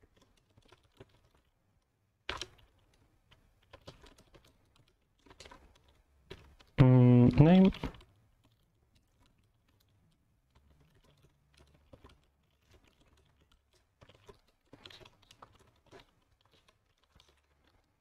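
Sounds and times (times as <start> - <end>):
keyboard typing: 0.1 - 1.5, 3.6 - 8.1, 10.5 - 17.8
short wordless vocal sound: 6.8 - 7.8.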